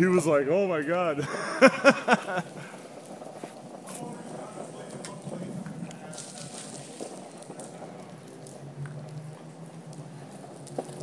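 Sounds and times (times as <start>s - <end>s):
small wheels rolling on asphalt: 0.0s - 11.0s.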